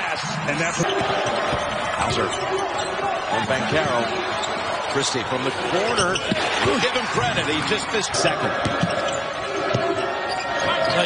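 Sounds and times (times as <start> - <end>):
arena crowd noise and voices: 0.0 - 11.0.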